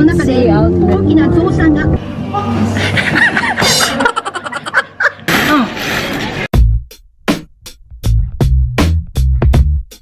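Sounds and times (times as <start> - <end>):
woman laughing: 2.8 - 5.7.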